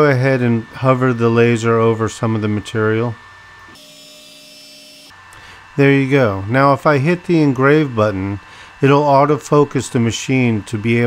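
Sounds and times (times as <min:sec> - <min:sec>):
stepper motors whining: 0:00.0 - 0:11.0.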